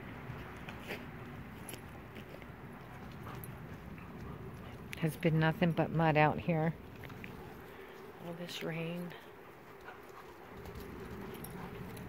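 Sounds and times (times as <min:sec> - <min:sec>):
quiet outdoor background noise: 0:00.0 - 0:12.0
dog chewing in mud: 0:06.8 - 0:08.0
faint clicks and scrapes: 0:06.9 - 0:12.0.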